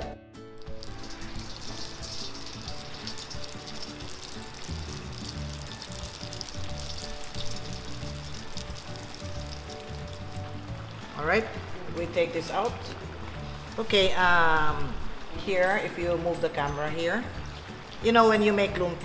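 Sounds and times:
quiet background music: 0:00.0 - 0:19.0
oil sizzling and crackling: 0:00.5 - 0:19.0.

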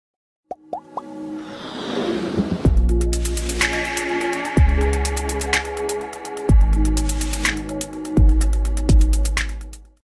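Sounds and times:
music build: 0:00.6 - 0:09.4
quick rising pops: 0:00.8 - 0:02.9.

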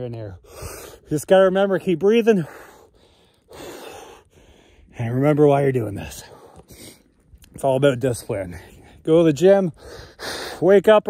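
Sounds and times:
man breathing heavily: 0:00.4 - 0:01.2, 0:02.4 - 0:05.0, 0:06.1 - 0:07.3, 0:09.7 - 0:10.7.

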